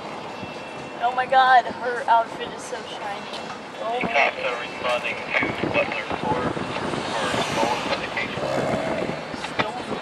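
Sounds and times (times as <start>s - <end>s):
people talking indistinctly: 1.0s - 10.0s.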